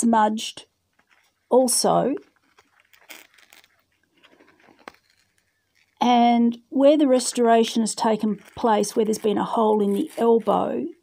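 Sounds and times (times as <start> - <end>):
metal tool scratching and clicking: 4.8 - 6.0.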